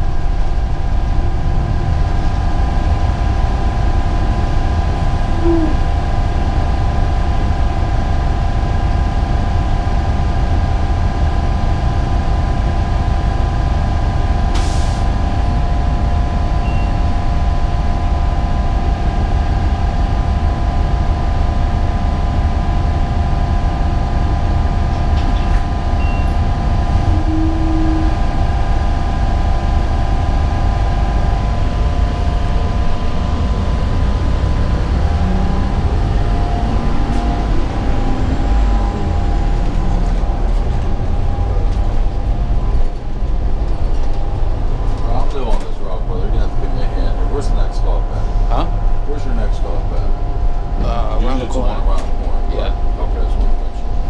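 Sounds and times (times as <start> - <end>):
bus engine and road rumble: 0.0 - 54.0
steady whine: 0.0 - 54.0.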